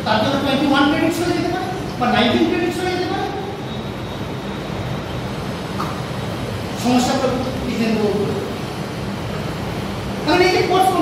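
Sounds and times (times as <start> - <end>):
room noise rumble and hiss: 0.0 - 11.0.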